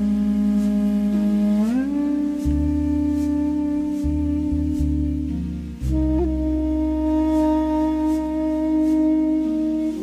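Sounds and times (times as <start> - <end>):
held sliding melody note: 0.0 - 10.0
sustained low bass note: 0.0 - 10.0.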